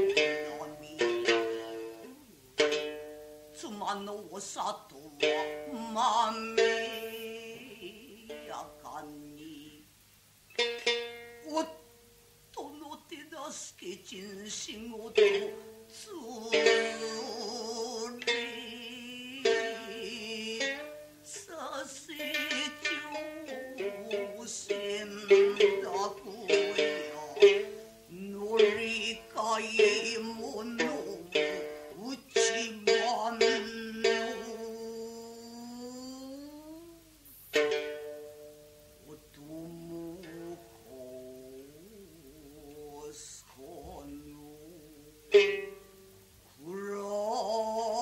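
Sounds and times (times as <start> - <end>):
plucked shamisen notes: 0.0 - 48.0
woman chanting wavering tones: 3.5 - 9.8, 39.1 - 48.0.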